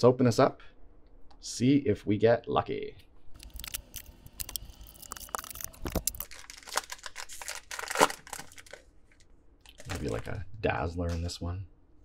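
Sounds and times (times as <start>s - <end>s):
handling packaging: 3.4s - 10.4s
plastic shrink wrap ripping: 3.4s - 10.4s.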